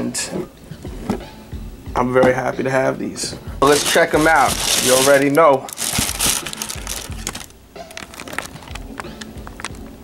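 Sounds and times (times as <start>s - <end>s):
tissue paper crinkling: 3.6s - 8.8s.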